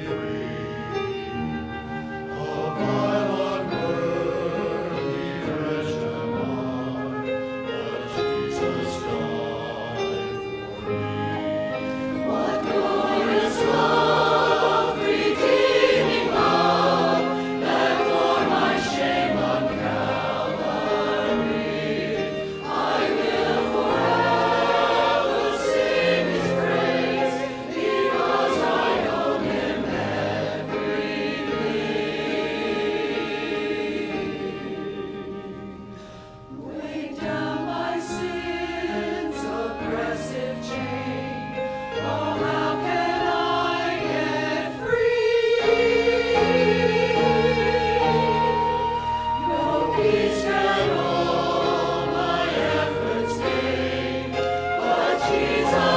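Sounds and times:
choir singing a hymn: 0.0 - 55.9
instrumental accompaniment: 0.0 - 55.9.

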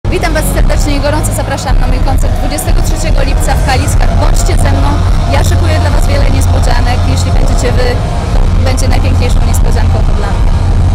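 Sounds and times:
low-pitched rumble: 0.0 - 10.9
woman speaking: 0.1 - 8.0, 8.6 - 10.4.

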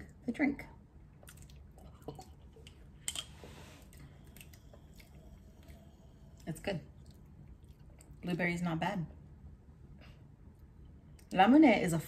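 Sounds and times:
soft chewing: 1.1 - 8.3
sipping and swallowing: 1.2 - 2.9.

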